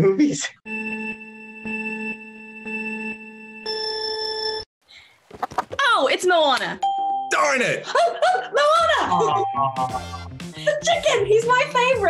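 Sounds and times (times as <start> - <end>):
electronic countdown beeps: 9.1 - 10.4.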